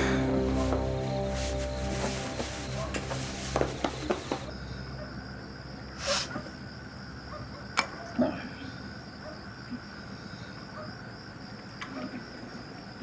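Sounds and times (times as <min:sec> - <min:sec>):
crickets chirring: 0:00.0 - 0:13.0.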